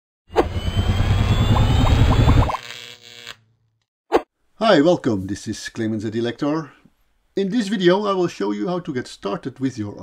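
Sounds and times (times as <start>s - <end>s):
faint rising whine: 0.4s - 2.6s
noisy electronic swell with rumble: 0.5s - 2.5s.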